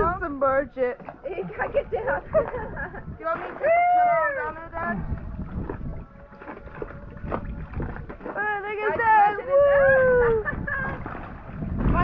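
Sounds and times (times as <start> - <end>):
water sloshing and splashing: 0.0 - 12.0
wind buffeting microphone: 0.0 - 12.0.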